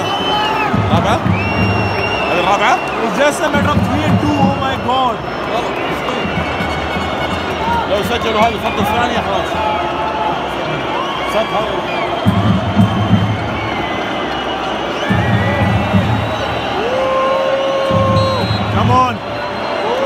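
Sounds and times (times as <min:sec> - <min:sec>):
crowd shouting: 0:00.0 - 0:20.0
piercing whistles from crowd: 0:00.0 - 0:20.0.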